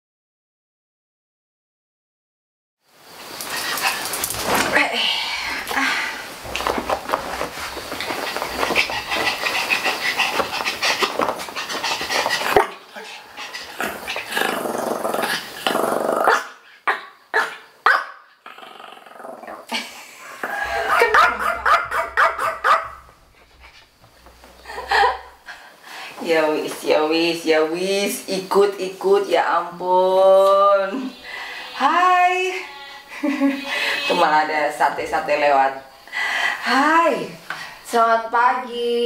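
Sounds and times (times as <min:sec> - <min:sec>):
small dog barking: 0:16.3 - 0:18.2, 0:20.7 - 0:23.1.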